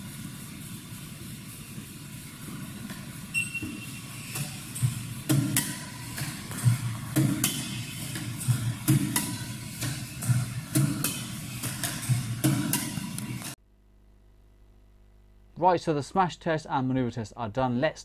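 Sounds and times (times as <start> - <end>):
steady low running noise: 0.0 - 13.6
shuttlecock hits: 2.8 - 13.6.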